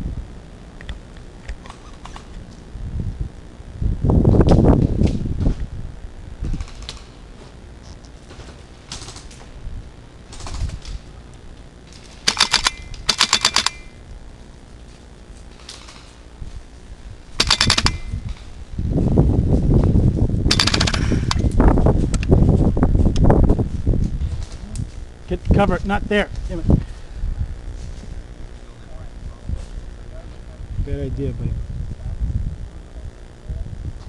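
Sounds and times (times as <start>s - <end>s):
airsoft rifle bursts: 11.9s - 14.0s, 17.4s - 18.4s, 20.5s - 21.5s.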